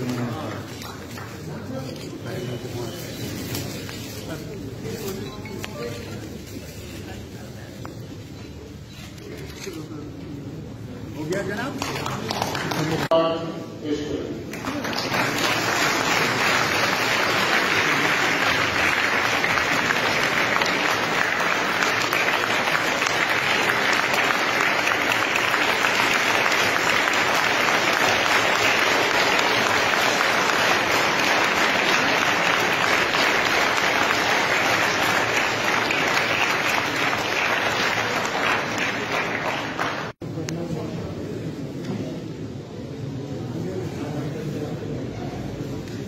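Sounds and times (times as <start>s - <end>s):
crowd applauding: 11.6s - 13.1s, 14.5s - 40.2s.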